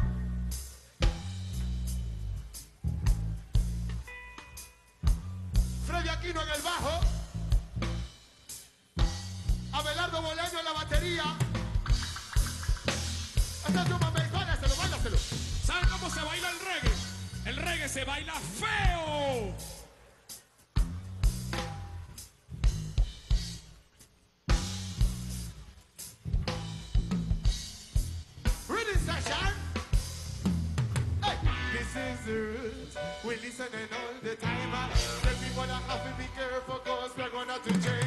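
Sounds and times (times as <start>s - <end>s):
drum kit kick and snare: 0.0s - 4.1s, 6.8s - 10.0s, 10.9s - 19.8s, 20.8s - 23.7s, 24.5s - 31.8s, 34.5s - 36.2s
live reggae band: 0.0s - 38.0s
person singing: 31.2s - 38.0s.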